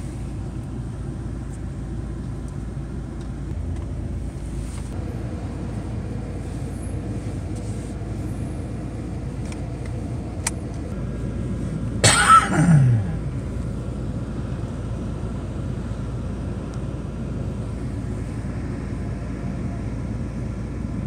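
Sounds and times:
car cabin engine rumble: 0.0s - 21.0s.

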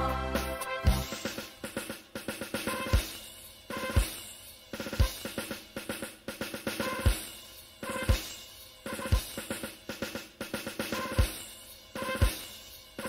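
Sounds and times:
background music with drum kit: 0.0s - 13.0s
snare and tom rolls: 0.4s - 4.2s.

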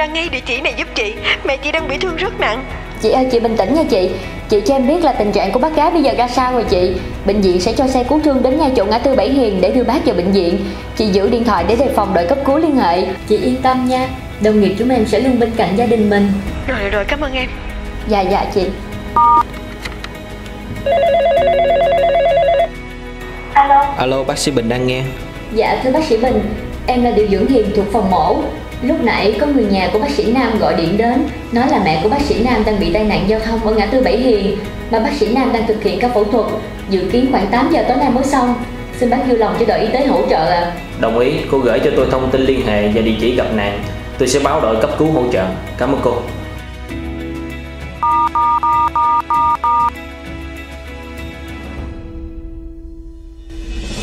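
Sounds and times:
telephone keypad dial tones: 19.2s - 19.6s, 20.9s - 22.7s, 48.0s - 49.9s
telephone ringer warbling: 20.9s - 22.7s.

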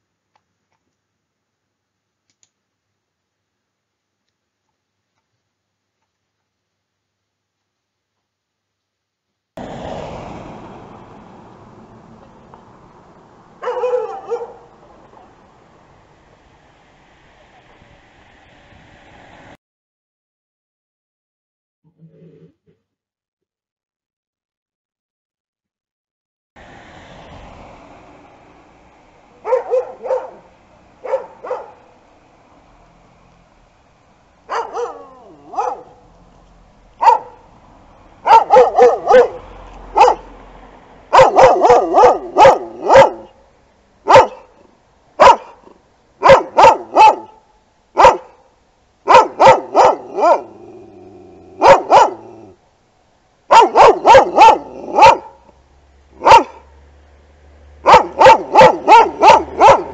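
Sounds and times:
dogs barking: 13.6s - 14.8s, 29.4s - 31.9s, 34.5s - 36.1s, 37.0s - 37.4s, 38.2s - 40.3s, 41.1s - 43.4s, 44.0s - 44.6s, 45.2s - 47.4s, 48.0s - 48.4s, 49.0s - 50.9s, 51.6s - 52.6s, 53.5s - 55.5s, 56.2s - 56.7s, 57.8s - 59.9s.

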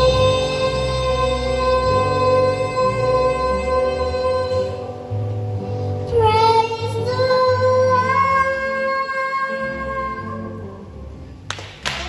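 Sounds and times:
girl singing into a microphone: 0.0s - 5.0s, 6.0s - 10.7s.

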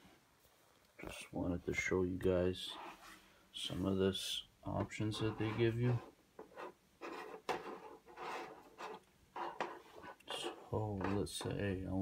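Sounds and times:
computer mouse sliding on desk: 5.0s - 11.2s.

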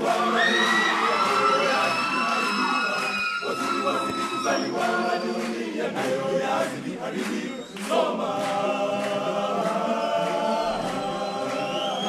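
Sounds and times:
a cappella choir singing: 0.0s - 12.0s.

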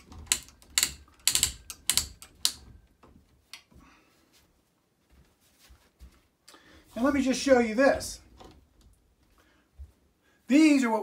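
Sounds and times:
ratchet clicking: 0.0s - 2.7s.

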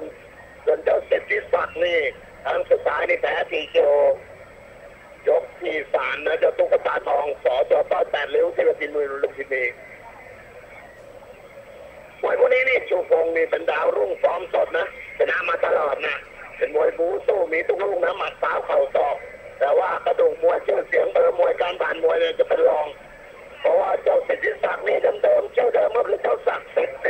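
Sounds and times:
commentator talking: 0.0s - 4.3s, 5.0s - 27.0s.

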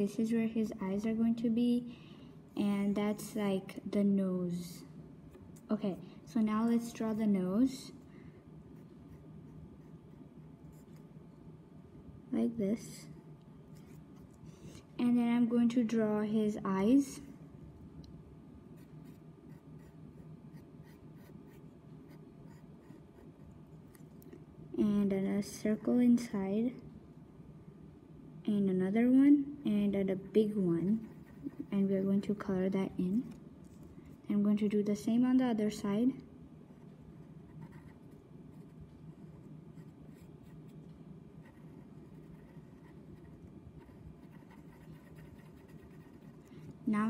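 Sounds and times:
low steady hum: 0.0s - 47.0s
pencil scratching on paper: 30.9s - 32.0s, 41.4s - 46.5s.

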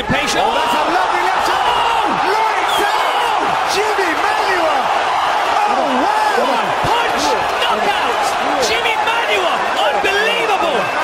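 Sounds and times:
arena crowd cheering and shouting: 0.0s - 11.0s.

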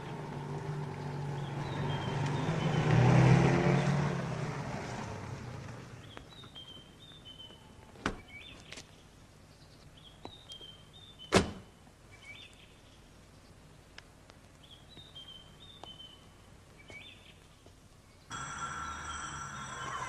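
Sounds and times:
steady bed with held tones: 18.3s - 20.0s.

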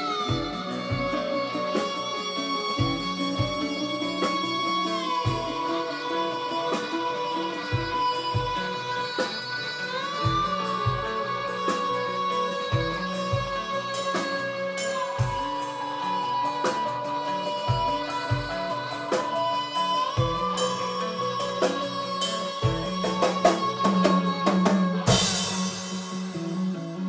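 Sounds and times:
bass guitar: 0.0s - 27.0s
slide electric guitar lead: 0.0s - 27.0s
cymbal strikes: 14.8s - 26.8s.

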